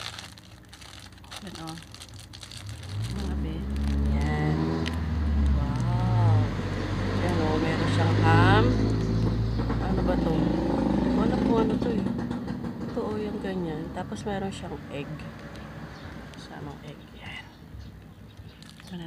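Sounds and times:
vehicle engine revving: 0:02.5 - 0:12.9.

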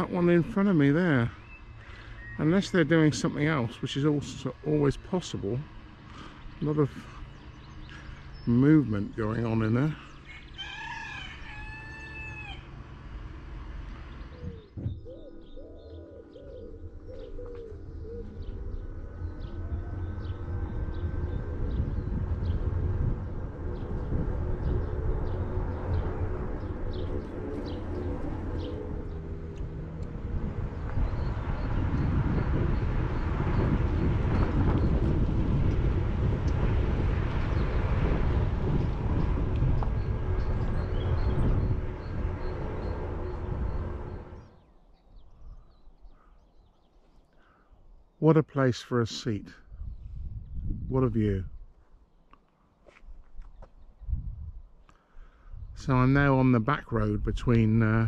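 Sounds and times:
wind rumble on microphone: 0:00.0 - 0:46.6, 0:49.6 - 0:51.9, 0:53.0 - 0:58.0
birds calling: 0:00.0 - 0:50.2
bird cooing: 0:14.3 - 0:22.0.

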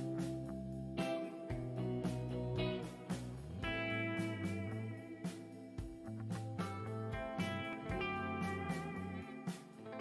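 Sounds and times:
plucked guitar background music: 0:00.0 - 0:10.0.

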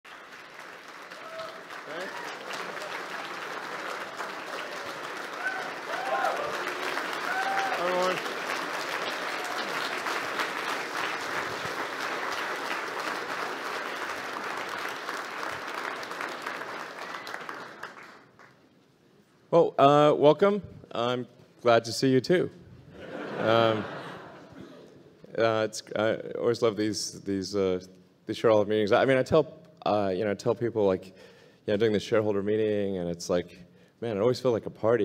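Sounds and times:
audience applauding: 0:00.0 - 0:18.6
cheers and whoops: 0:01.1 - 0:02.9, 0:04.6 - 0:08.2, 0:09.2 - 0:10.0.

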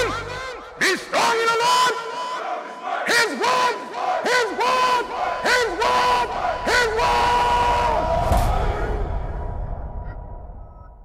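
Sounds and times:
men chanting in unison: 0:00.0 - 0:09.2.

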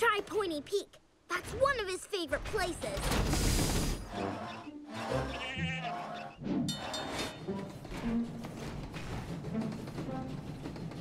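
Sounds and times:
cartoon background music: 0:04.0 - 0:11.0
goat bleating: 0:05.2 - 0:06.1.

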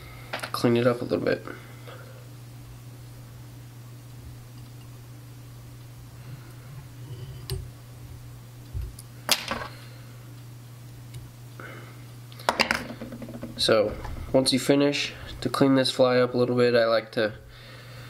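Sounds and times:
low hum: 0:01.0 - 0:16.5.

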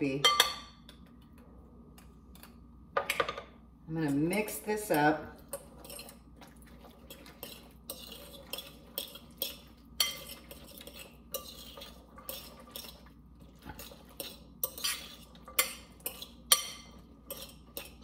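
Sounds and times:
fork clinking and scraping glass bowl: 0:05.5 - 0:06.2, 0:06.8 - 0:18.0.

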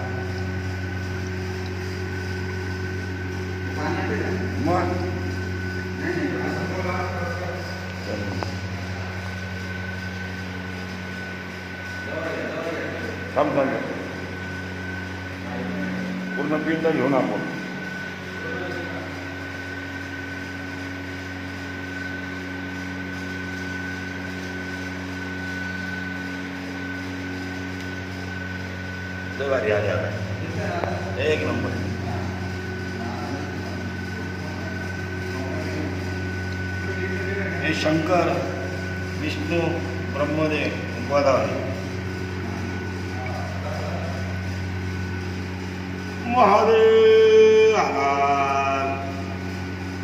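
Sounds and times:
machine hum with high whine: 0:00.0 - 0:50.0.

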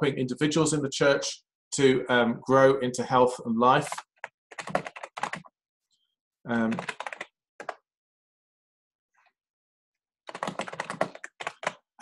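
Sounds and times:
typing on computer keyboard: 0:03.9 - 0:05.5, 0:06.5 - 0:07.8, 0:10.3 - 0:11.9.

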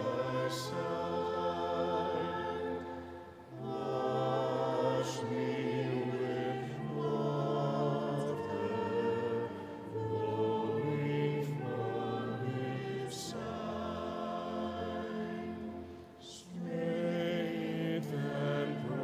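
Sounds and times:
choir singing a slow hymn: 0:00.0 - 0:19.0.

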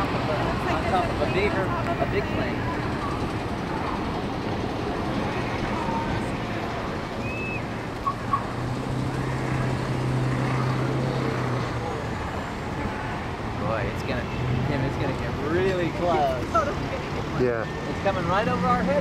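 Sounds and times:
distant engines rumbling: 0:00.0 - 0:19.0.

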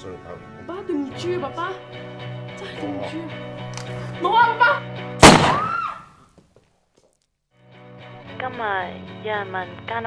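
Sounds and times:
handgun shot: 0:05.2 - 0:06.0.

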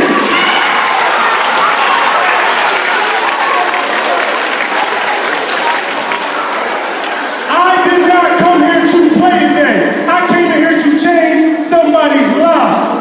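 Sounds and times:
audience applauding: 0:00.0 - 0:08.4.

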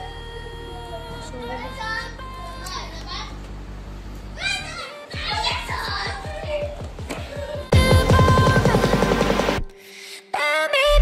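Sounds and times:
children calling: 0:04.4 - 0:07.7
background music with low beat: 0:05.1 - 0:09.8.

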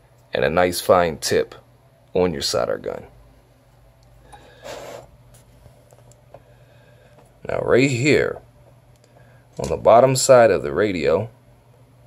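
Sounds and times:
low steady hum: 0:00.0 - 0:12.0
breathy puff of air: 0:04.2 - 0:05.1, 0:06.4 - 0:07.2.

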